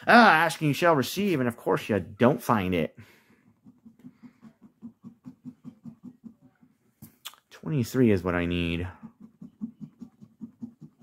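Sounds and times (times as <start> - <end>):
coin scratching lottery ticket: 3.5 - 6.6, 8.0 - 11.0.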